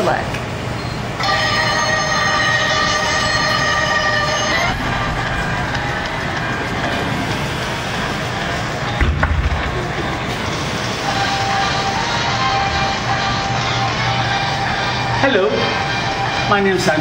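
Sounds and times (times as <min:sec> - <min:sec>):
horn-like sustained chord: 0:01.2 - 0:07.6
steady rushing noise: 0:01.6 - 0:17.0.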